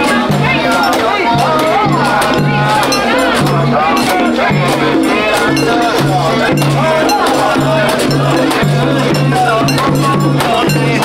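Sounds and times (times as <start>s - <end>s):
crowd chanting and calling: 0.0s - 11.0s
rhythmic metal clanging: 0.0s - 11.0s.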